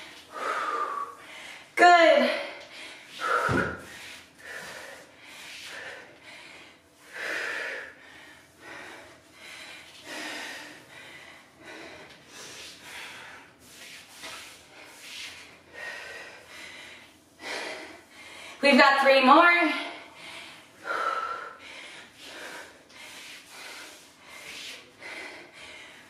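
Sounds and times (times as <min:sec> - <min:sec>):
woman breathing hard: 0:00.0 - 0:01.8, 0:02.4 - 0:13.8, 0:14.4 - 0:18.6, 0:19.8 - 0:26.0.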